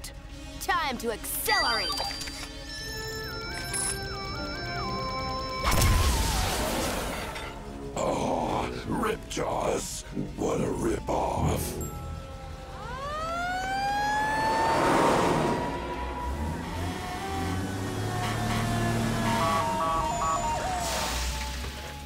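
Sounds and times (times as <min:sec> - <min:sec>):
background music: 0:00.0 - 0:22.0
emergency vehicle siren wailing: 0:03.1 - 0:07.2, 0:10.2 - 0:22.0.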